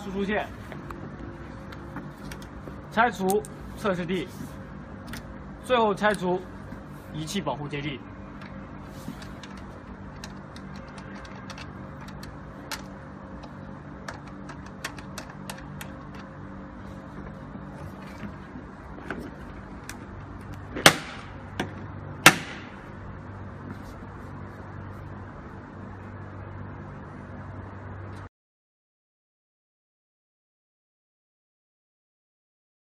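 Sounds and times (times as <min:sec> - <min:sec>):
sharp knocks: 0:20.8 - 0:22.8.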